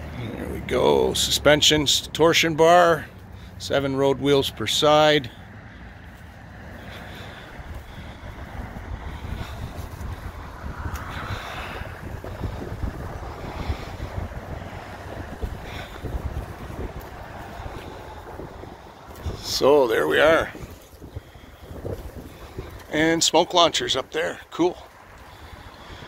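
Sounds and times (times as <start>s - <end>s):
wind buffeting microphone: 4.4s - 26.0s.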